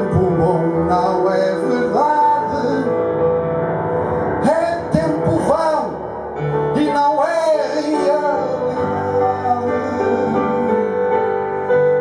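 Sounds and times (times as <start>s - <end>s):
piano and bass notes: 0.0s - 12.0s
swooping melody line: 0.0s - 12.0s.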